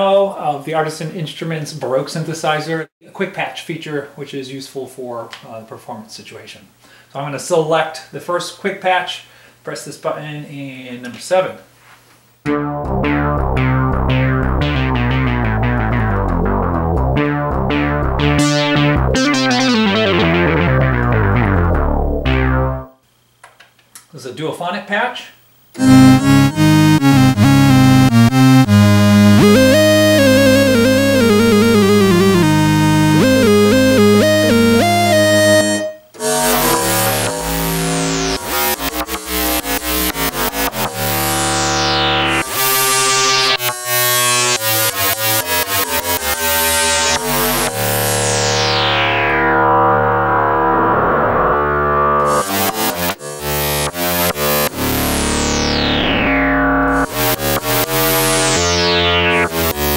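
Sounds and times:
bright struck synthesizer notes: 0:12.5 - 0:23.0, 0:25.8 - 0:44.6
synthesizer gliding melody: 0:12.5 - 0:23.0, 0:25.8 - 0:59.9.

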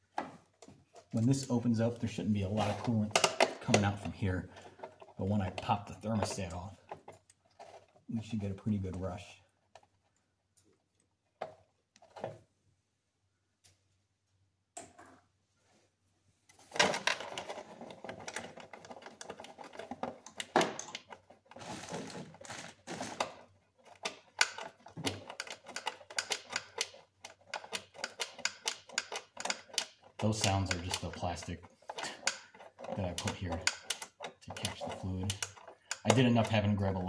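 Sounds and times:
plastic container crackling: 0:16.6 - 0:26.1.

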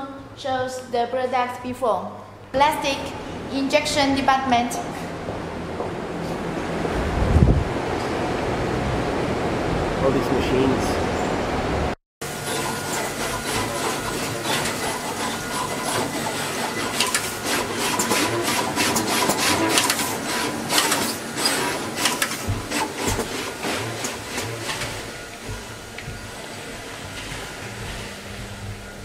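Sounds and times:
steady machine hum: 0:02.2 - 0:29.0
fast machine clicking: 0:12.3 - 0:26.5.

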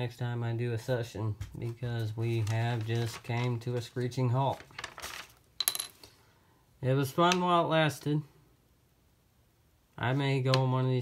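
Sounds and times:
coin clinking on hard surface: 0:05.6 - 0:06.1.

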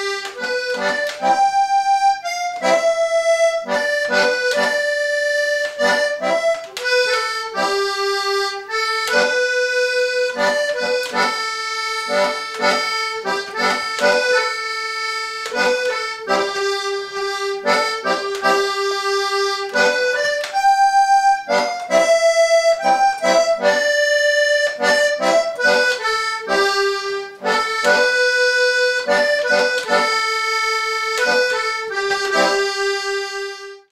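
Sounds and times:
button accordion playing a tune: 0:00.0 - 0:33.9.

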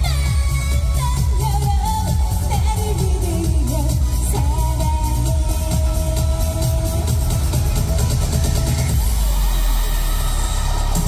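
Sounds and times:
pop music drum beat: 0:00.0 - 0:11.0.

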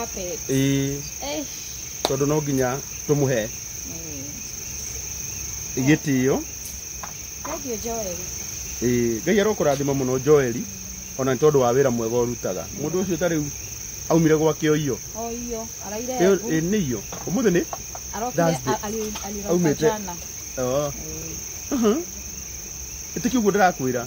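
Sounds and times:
crickets chirring: 0:00.0 - 0:24.0
man talking: 0:00.5 - 0:01.1, 0:02.1 - 0:03.5, 0:05.8 - 0:06.5, 0:08.8 - 0:13.5, 0:14.1 - 0:15.0, 0:16.2 - 0:17.7, 0:18.4 - 0:18.8, 0:20.6 - 0:21.0, 0:23.2 - 0:24.0.

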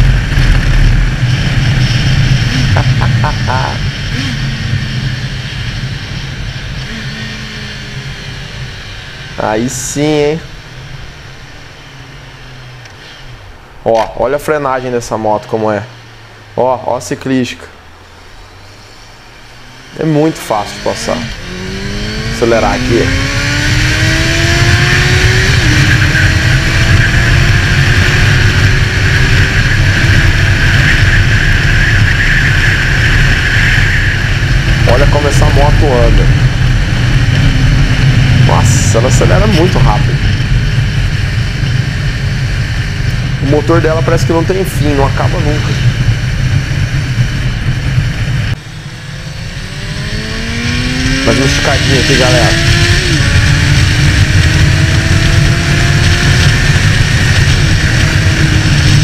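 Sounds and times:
motorcycle engine droning: 0:00.0 - 0:59.0
wind noise on microphone: 0:44.0 - 0:51.3, 0:52.2 - 0:59.0.

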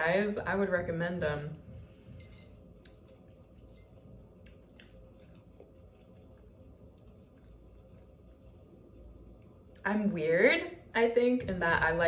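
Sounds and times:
low steady hum: 0:00.0 - 0:12.0
faint chewing: 0:01.6 - 0:09.8.

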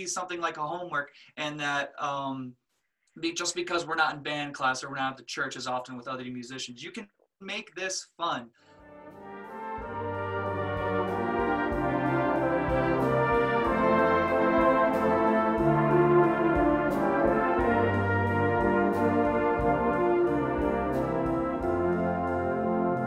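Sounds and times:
brass ensemble music: 0:08.7 - 0:23.0.

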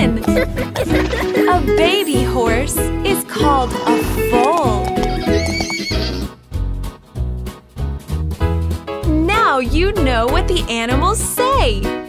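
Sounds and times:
horse whinnying: 0:03.4 - 0:06.4.

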